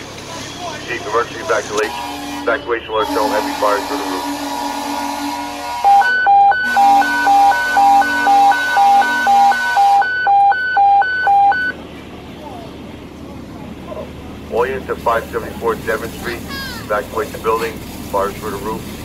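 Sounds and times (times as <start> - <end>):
two-tone warble alert over radio: 0.9 - 4.4.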